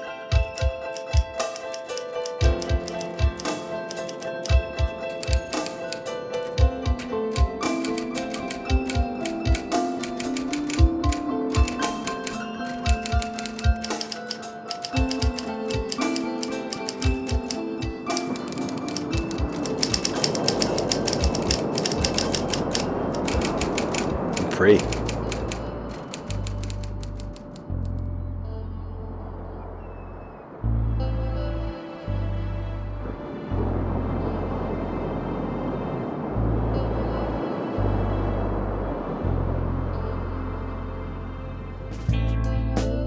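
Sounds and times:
melodic music score: 0:00.0 - 0:43.0
typewriter keys clicking: 0:00.3 - 0:06.0, 0:07.3 - 0:27.9.

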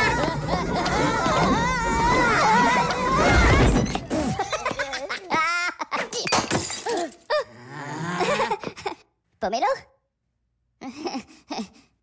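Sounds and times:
wavering wail: 0:00.0 - 0:03.8
glass light bulb shattering: 0:06.2 - 0:07.3.

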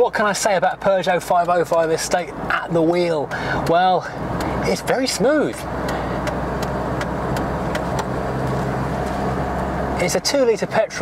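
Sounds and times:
car engine running: 0:00.0 - 0:11.0
road and tyre noise: 0:00.0 - 0:11.0.

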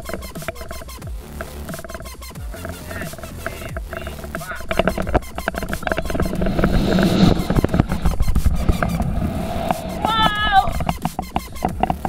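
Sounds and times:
wind buffeting microphone: 0:03.7 - 0:12.0
high wavering cry: 0:07.2 - 0:10.9.

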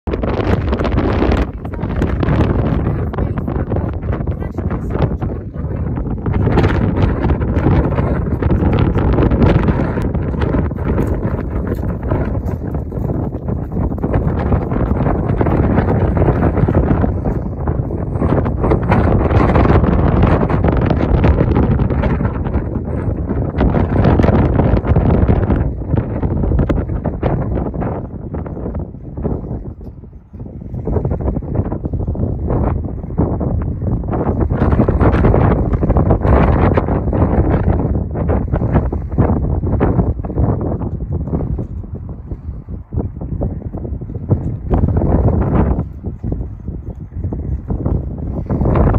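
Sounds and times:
wind buffeting microphone: 0:00.0 - 0:48.9.

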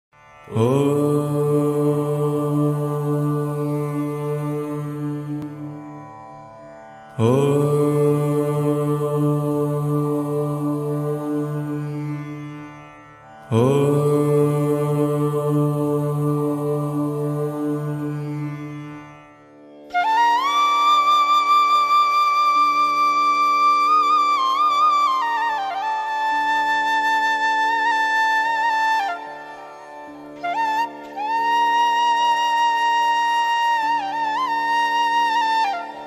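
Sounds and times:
person chanting om: 0:00.4 - 0:06.2, 0:07.1 - 0:12.7, 0:13.4 - 0:19.0, 0:24.0 - 0:36.0.

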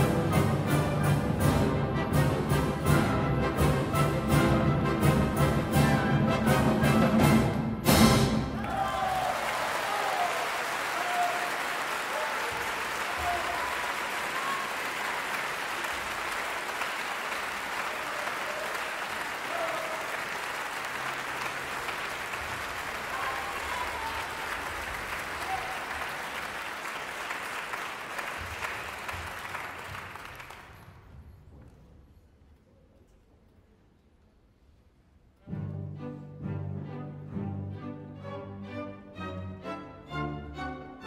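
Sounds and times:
audience applauding: 0:08.5 - 0:31.1.

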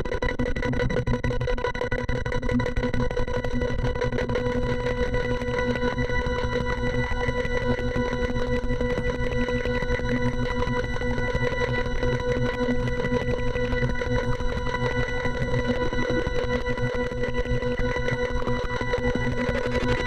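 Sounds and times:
electronic drone: 0:00.2 - 0:20.0.

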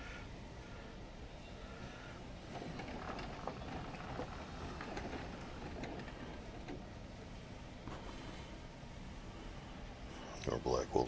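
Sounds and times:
low steady rumble: 0:00.0 - 0:11.0
faint clicks and rustles: 0:01.7 - 0:10.6.

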